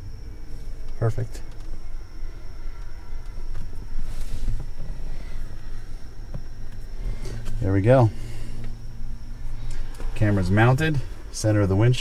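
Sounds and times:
rumbling handling noise: 0.0 - 12.0
soft rustle: 2.5 - 11.3.

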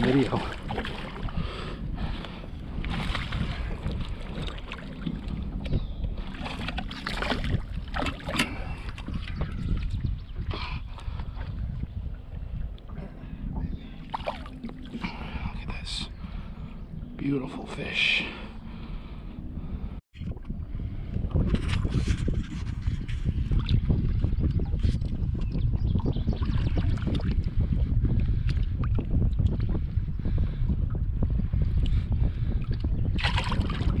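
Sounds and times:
water splashing: 0.0 - 1.4, 2.8 - 5.6, 6.2 - 9.1, 14.0 - 15.2, 33.2 - 34.0
wind rumbling on microphone: 0.0 - 34.0.

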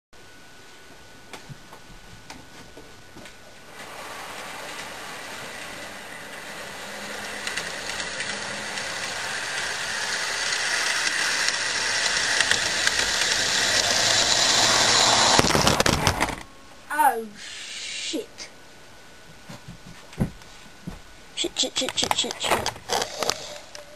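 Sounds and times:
model train motor and wheels: 3.7 - 16.4, 21.6 - 23.9
clatter of camera knocked over: 15.4 - 16.4.

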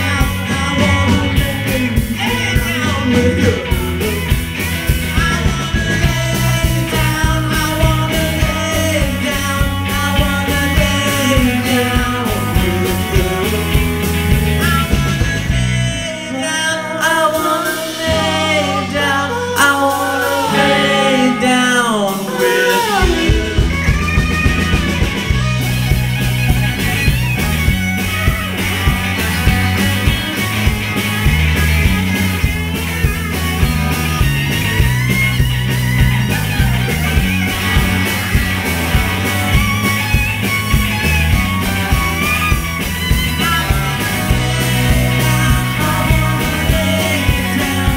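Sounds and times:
person singing: 0.0 - 4.3, 5.0 - 14.9, 15.9 - 24.0, 43.3 - 47.9
bass guitar: 0.0 - 47.9
drums: 0.0 - 47.9
electric guitars: 0.0 - 47.9
rock band playing: 0.0 - 47.9.

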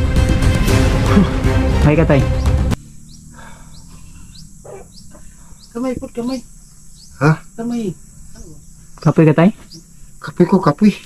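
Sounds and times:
high rising chirps: 0.7 - 11.0
man talking: 1.2 - 2.4, 10.2 - 11.0
low background hum: 2.7 - 11.0.

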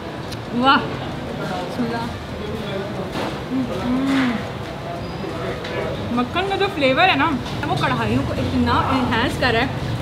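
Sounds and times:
woman humming: 3.5 - 4.5.

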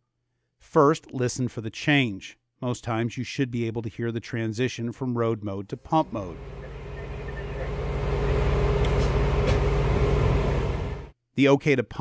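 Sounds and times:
diesel engine humming: 5.9 - 11.1.

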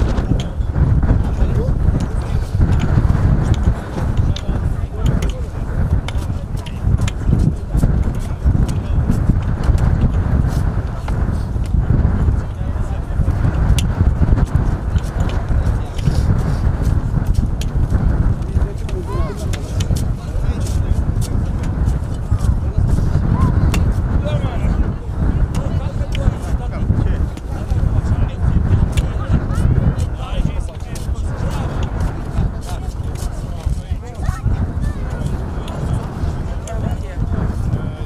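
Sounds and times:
people talking: 0.0 - 38.0
steady low rumble: 0.0 - 38.0.

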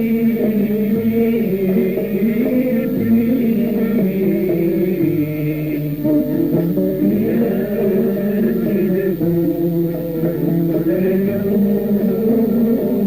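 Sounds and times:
low drum beat: 0.0 - 12.5
instrumental accompaniment: 0.0 - 13.0
man chanting held notes: 0.0 - 13.0.

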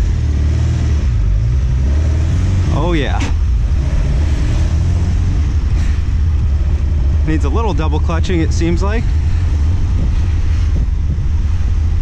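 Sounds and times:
car engine and road noise: 0.0 - 12.0
wind buffeting microphone: 3.0 - 12.0.

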